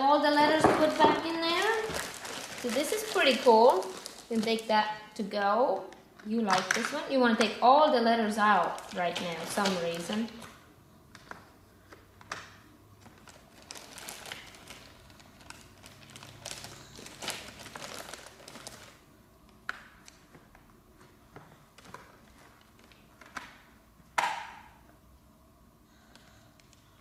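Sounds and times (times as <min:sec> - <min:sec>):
plastic bag crinkling: 0:00.3 - 0:05.0, 0:08.3 - 0:10.5, 0:13.0 - 0:19.0, 0:21.8 - 0:23.4.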